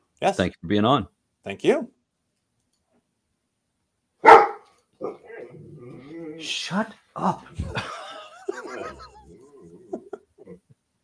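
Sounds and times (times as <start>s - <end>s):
dog barking: 4.2s - 5.5s.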